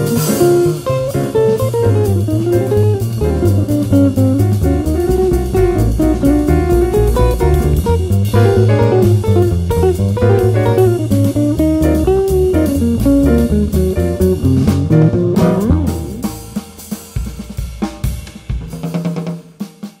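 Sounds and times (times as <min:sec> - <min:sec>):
electric jazz guitar solo: 0:00.0 - 0:16.6
bass: 0:00.0 - 0:19.0
drum kit playing: 0:00.0 - 0:20.0.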